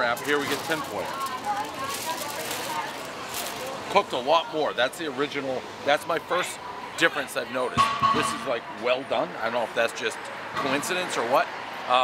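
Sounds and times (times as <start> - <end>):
aluminium foil crinkling: 0.0 - 4.0
faint voices: 0.0 - 12.0
street noise: 0.0 - 12.0.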